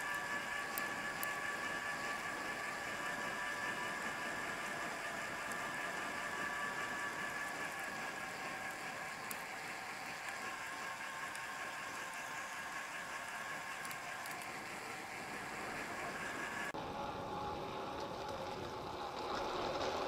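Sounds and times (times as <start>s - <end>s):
bike rolling whir: 0.0s - 20.0s.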